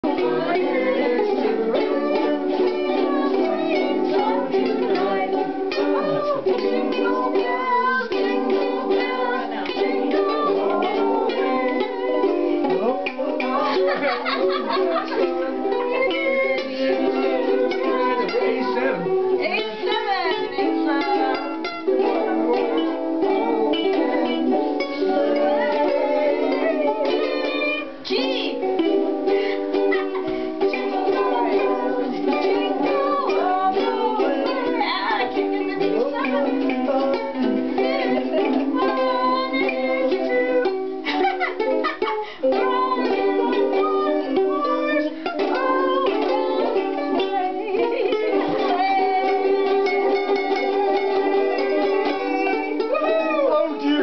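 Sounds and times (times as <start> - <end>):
ukuleles strumming chords: 0.0 - 54.0.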